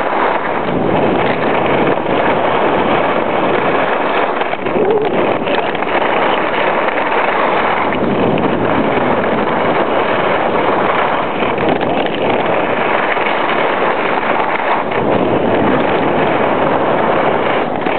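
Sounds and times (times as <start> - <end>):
skis sliding on snow: 0.0 - 17.9
wind rushing over microphone: 0.0 - 17.9.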